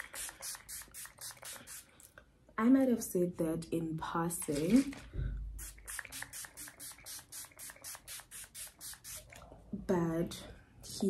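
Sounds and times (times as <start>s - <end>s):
makeup brush strokes hissing: 0.0s - 1.9s.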